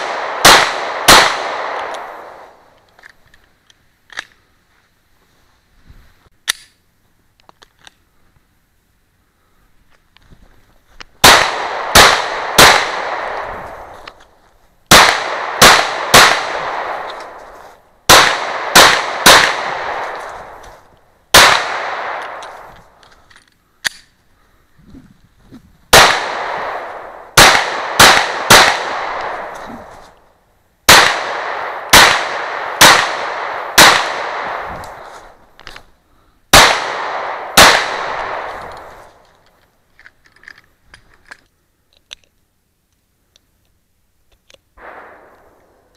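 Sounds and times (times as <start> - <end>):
pistol shots echoing: 0.0 - 2.6, 11.2 - 14.0, 14.9 - 17.4, 18.1 - 20.7, 21.3 - 22.7, 25.9 - 30.1, 30.9 - 35.1, 36.5 - 39.2, 44.8 - 45.7.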